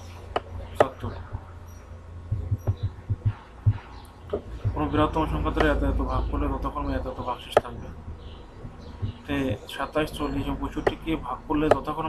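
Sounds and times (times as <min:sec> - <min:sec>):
soft low thumps: 0:00.0 - 0:01.6, 0:02.2 - 0:11.9
low electrical hum: 0:00.0 - 0:12.0.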